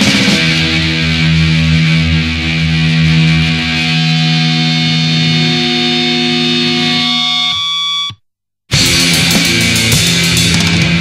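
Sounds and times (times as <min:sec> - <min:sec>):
distorted electric guitar ringing: 0:00.6 - 0:08.2.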